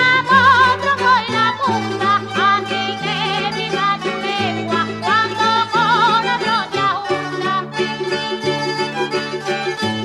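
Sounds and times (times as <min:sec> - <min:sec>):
folk dance on plucked strings: 0:00.0 - 0:10.0.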